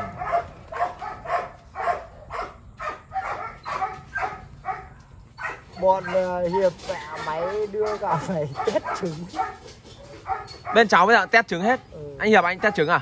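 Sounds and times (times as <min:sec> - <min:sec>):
dogs yelping barks: 0:00.0 - 0:13.0.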